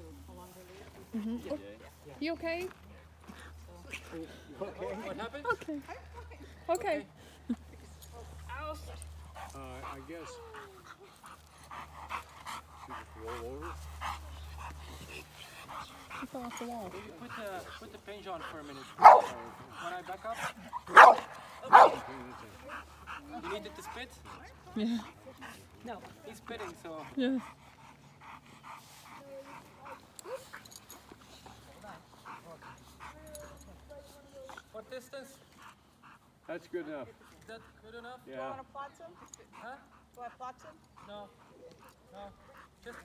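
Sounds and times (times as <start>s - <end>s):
dog panting rapidly: 0.4s - 43.0s.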